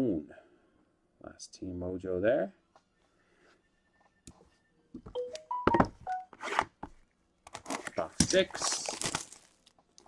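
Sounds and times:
short beep tones: 0:03.9 - 0:06.3.

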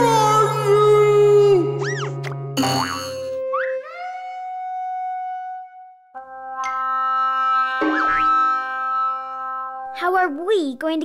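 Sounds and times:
cartoon music: 0:00.0 - 0:05.0, 0:06.2 - 0:10.2
springy boing effects: 0:02.6 - 0:03.7.

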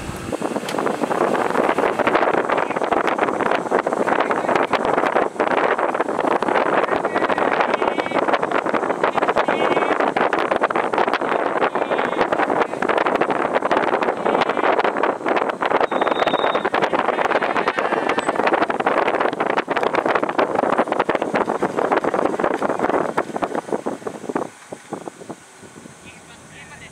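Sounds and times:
wind buffeting microphone: 0:00.0 - 0:26.9.

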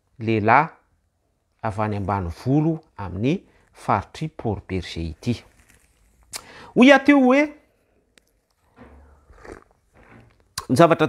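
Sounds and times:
man sipping from glass: 0:08.5 - 0:10.6.

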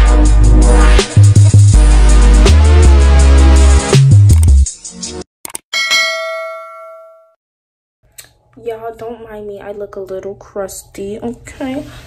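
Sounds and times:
bright bell ding: 0:05.8 - 0:07.4.

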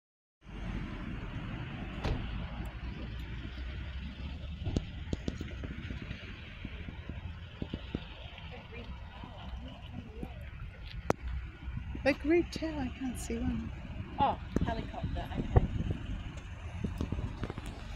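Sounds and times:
distant helicopter rumble: 0:00.4 - 0:17.9.

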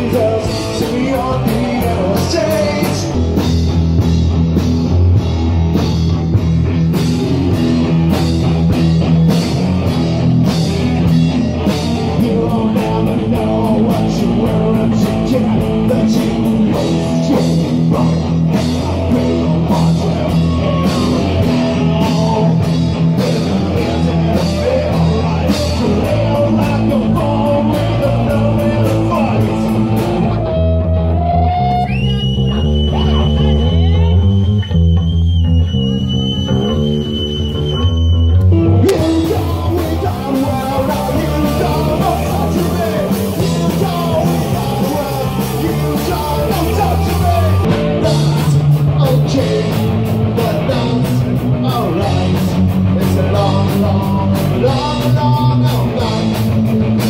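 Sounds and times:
person singing: 0:00.0 - 0:03.2, 0:11.3 - 0:32.0, 0:38.6 - 0:56.6
drum kit beat: 0:00.0 - 0:37.8, 0:38.4 - 0:57.0
bass guitar: 0:00.0 - 0:57.0
electric guitars: 0:00.0 - 0:57.0.

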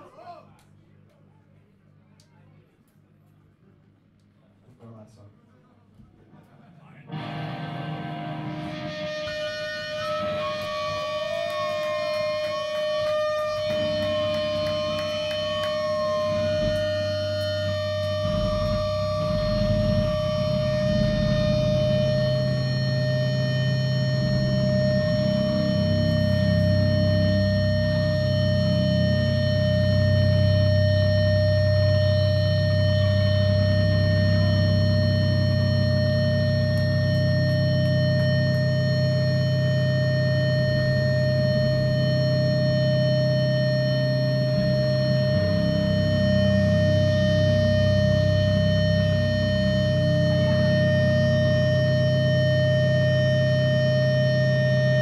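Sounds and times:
high-pitched amplifier feedback whine: 0:07.1 - 0:55.0
low distorted guitar drone: 0:07.1 - 0:55.0
wavering siren-like tone: 0:08.3 - 0:55.0.

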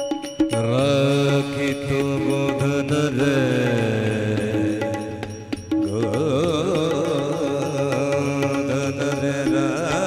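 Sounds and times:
hand cymbals ringing: 0:00.0 - 0:08.6
man singing devotional song: 0:00.2 - 0:10.0.

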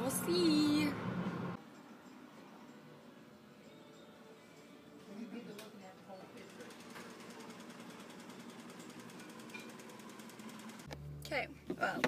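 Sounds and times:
sewing machine running fast: 0:06.4 - 0:10.9.

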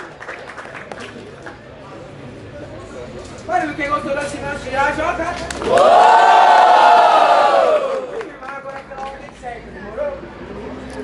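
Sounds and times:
crowd shouting ohhh: 0:05.7 - 0:08.2.

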